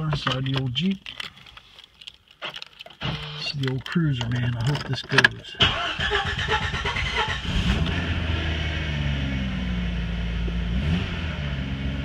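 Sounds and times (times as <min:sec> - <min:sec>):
car keys jingling: 0:00.0 - 0:07.4.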